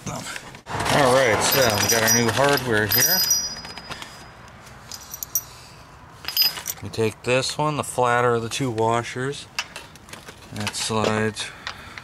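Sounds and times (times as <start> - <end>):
light metallic clinks: 1.5 - 5.5, 6.2 - 6.8.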